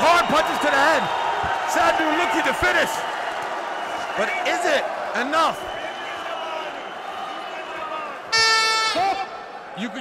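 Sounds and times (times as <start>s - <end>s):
electronic horn: 8.3s - 9.1s.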